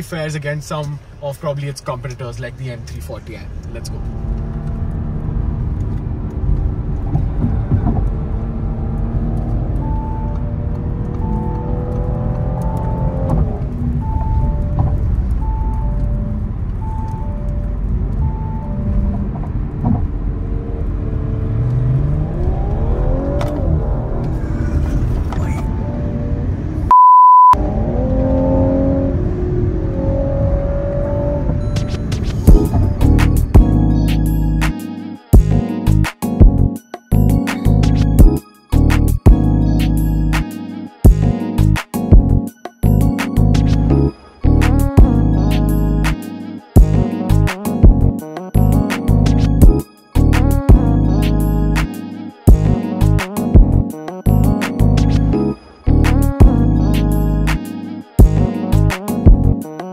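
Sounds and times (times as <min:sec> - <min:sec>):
road rumble: 0:00.0 - 0:59.6
car engine revving: 0:02.5 - 0:15.4, 0:17.8 - 0:26.9, 0:27.6 - 0:34.7
loud single-tone bleep: 0:26.9 - 0:27.6
background music: 0:31.8 - 0:59.9.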